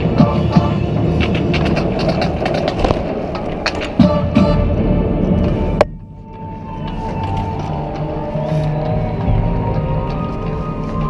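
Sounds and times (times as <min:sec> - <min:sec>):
marching band playing: 0:00.0 - 0:01.8, 0:03.9 - 0:05.8.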